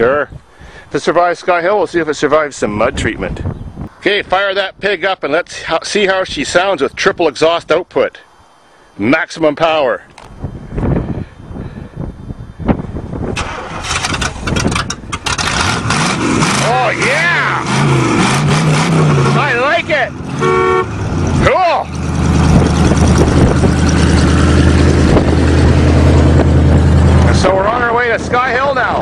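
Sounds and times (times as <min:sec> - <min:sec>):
car engine cranking and running: 0:13.4 - 0:28.4
car horn toot: 0:20.3 - 0:21.0.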